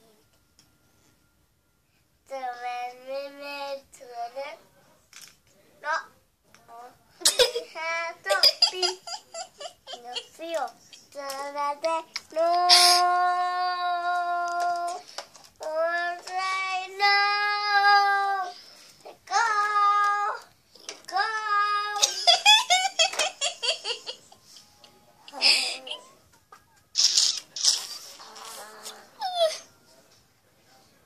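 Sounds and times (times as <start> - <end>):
girl giggling: 7.2 - 11.1, 22.0 - 26.9.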